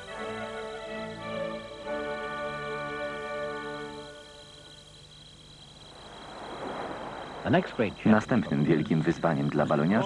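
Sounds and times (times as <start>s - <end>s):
background music: 0.0s - 5.2s
rushing noise: 5.8s - 8.0s.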